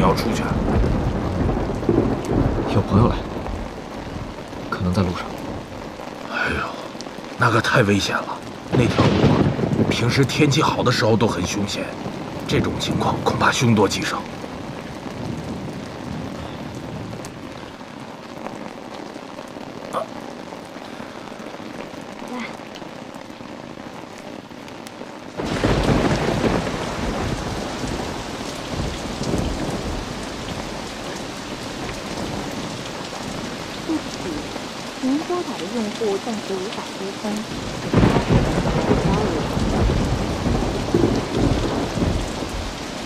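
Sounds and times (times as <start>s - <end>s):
low rumble of thunder: 0.0s - 6.9s, 7.6s - 17.9s, 25.4s - 43.0s
heavy rain falling: 0.0s - 43.0s.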